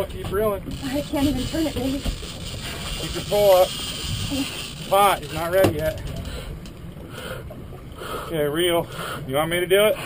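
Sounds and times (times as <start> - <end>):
fishing boat rumble and hiss: 0.0 - 10.0.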